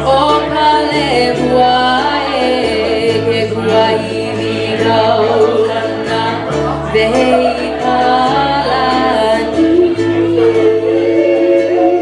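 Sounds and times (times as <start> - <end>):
ukulele: 0.0 - 12.0
woman and man singing: 0.0 - 12.0.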